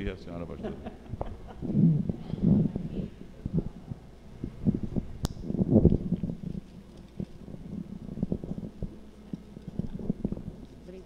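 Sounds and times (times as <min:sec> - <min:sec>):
microphone handling thumps and rubbing: 0:01.1 - 0:09.0, 0:09.7 - 0:10.6.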